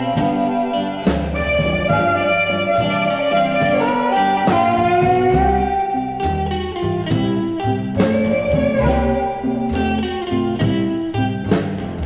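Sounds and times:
blues band instrumental: 0:00.0 - 0:12.0
drum hits: 0:00.0 - 0:12.0.

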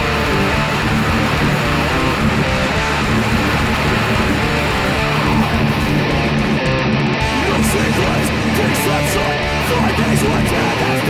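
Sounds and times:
distorted electric guitar metal riff: 0:00.0 - 0:11.0
recorded band track: 0:00.0 - 0:11.0.

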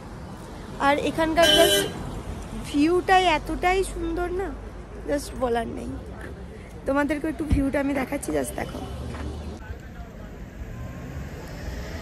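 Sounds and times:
woman speaking: 0:06.9 - 0:08.9.

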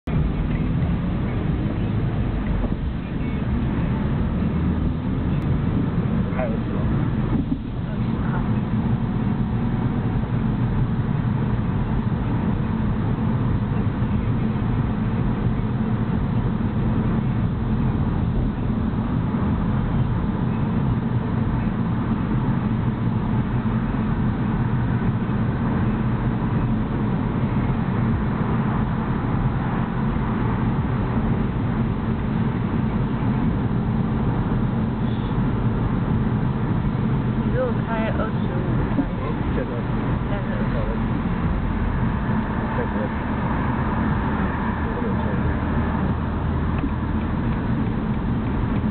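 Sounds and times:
car engine and road noise: 0:00.0 - 0:48.9.

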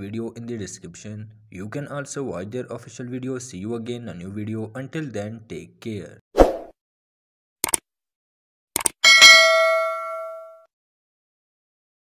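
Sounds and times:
bell chime ding: 0:09.0 - 0:10.7.

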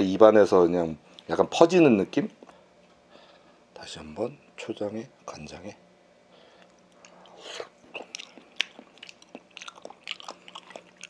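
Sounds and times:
person chewing with mouth clicks: 0:06.6 - 0:11.0.

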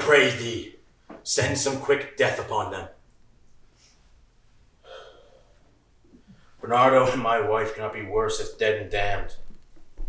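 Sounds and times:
man's sharp intake of breath: 0:04.8 - 0:05.5.

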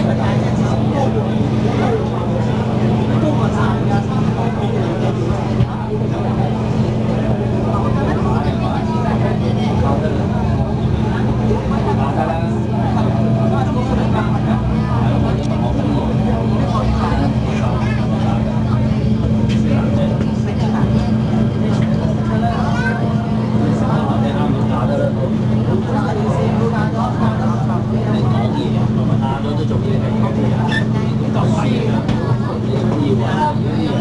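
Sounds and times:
passengers talking: 0:00.0 - 0:34.0
train carriage hum and rumble: 0:00.0 - 0:34.0.

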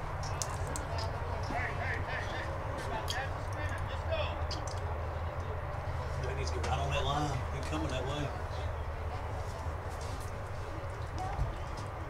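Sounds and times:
murmur of spectators' voices: 0:00.0 - 0:12.0.

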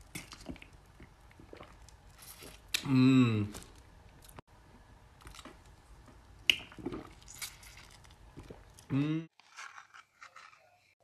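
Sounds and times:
soft squishing of biting candy: 0:06.4 - 0:11.0.

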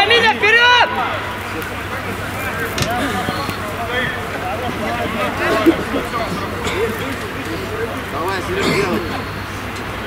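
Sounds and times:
faint voices calling: 0:00.0 - 0:10.0
outdoor background noise: 0:00.0 - 0:10.0.

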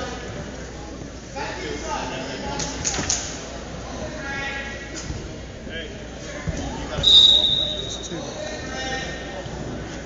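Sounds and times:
referee's whistle: 0:07.0 - 0:08.1.

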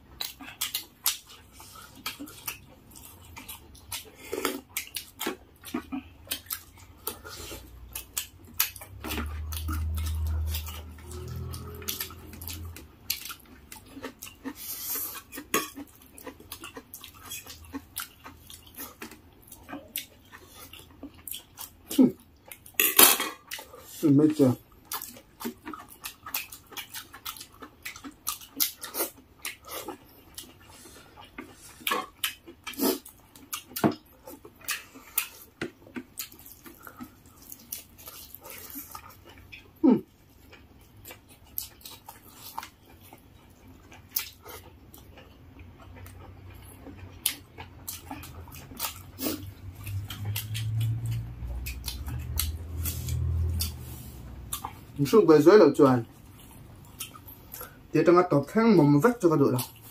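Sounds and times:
wet squishes of food mixed by hand: 0:00.0 - 0:22.7, 0:23.4 - 0:59.9
chewing and lip smacks: 0:00.1 - 0:22.8, 0:23.4 - 0:55.2, 0:56.0 - 0:57.8.

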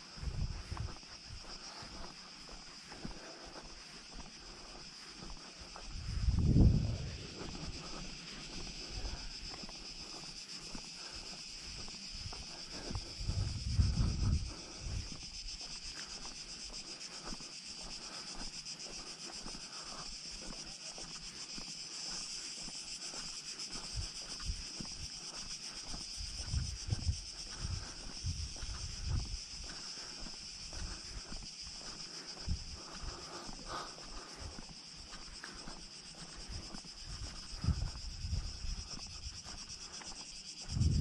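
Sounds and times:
high-pitched insect chorus: 0:00.0 - 0:41.0
wind buffeting microphone: 0:00.1 - 0:02.0, 0:05.6 - 0:09.5, 0:11.7 - 0:15.2, 0:26.1 - 0:29.8, 0:32.4 - 0:33.1, 0:36.5 - 0:39.9, 0:40.6 - 0:41.0.

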